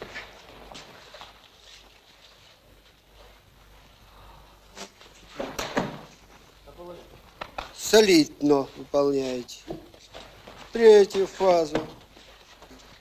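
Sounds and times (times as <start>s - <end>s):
clothing rustling: 0.0s - 4.1s, 6.1s - 13.0s
shuffling footsteps: 0.0s - 5.4s, 6.1s - 13.0s.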